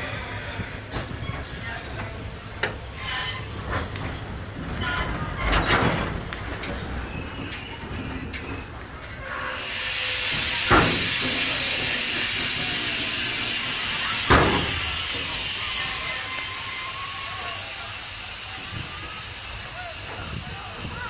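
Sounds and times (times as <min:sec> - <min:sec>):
train rumbling: 0:00.0 - 0:21.0
knocks and clanks from wheels: 0:00.9 - 0:09.2, 0:10.2 - 0:15.4
high wheel squeal: 0:05.6 - 0:17.5
loud even hiss: 0:09.3 - 0:21.0.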